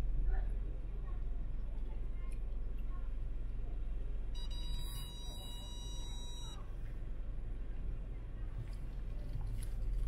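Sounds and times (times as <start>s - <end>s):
high electronic beep: 4.4s - 6.6s.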